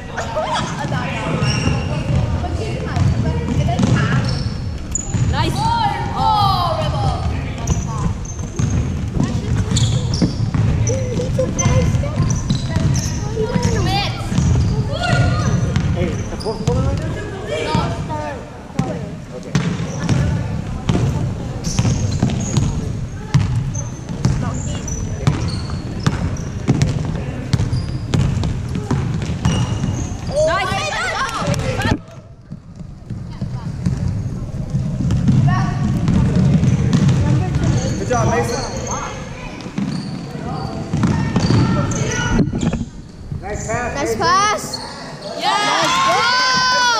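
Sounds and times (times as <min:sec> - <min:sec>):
sneaker squeaks: 0:00.2 - 0:05.8, 0:07.2 - 0:17.1, 0:18.8 - 0:45.8
ball bouncing on wooden floor: 0:25.2 - 0:30.0, 0:31.5 - 0:37.9, 0:40.9 - 0:42.8.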